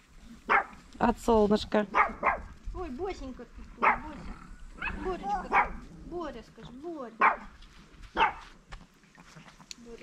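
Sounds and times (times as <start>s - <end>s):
puppy barking: 0.5s - 0.8s, 1.9s - 2.5s, 3.8s - 4.1s, 4.8s - 5.8s, 7.2s - 7.5s, 8.1s - 8.5s.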